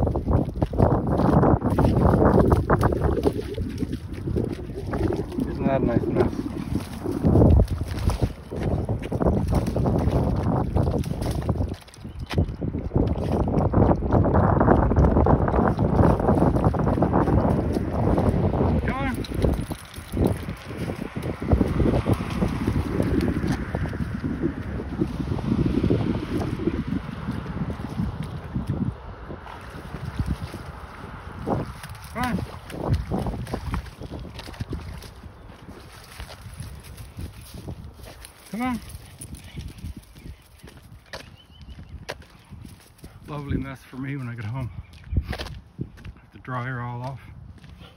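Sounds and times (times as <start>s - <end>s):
wind buffeting microphone: 0.0s - 47.9s.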